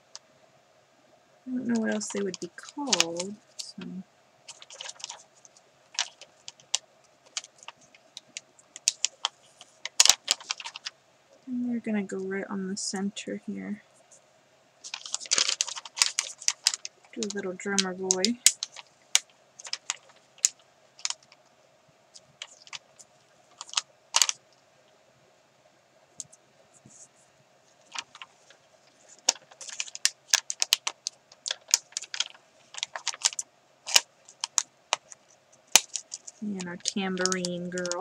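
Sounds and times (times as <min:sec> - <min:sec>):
sticker sheet crinkling: 0:01.5 - 0:10.9, 0:14.8 - 0:21.4, 0:22.2 - 0:24.4, 0:27.8 - 0:38.0.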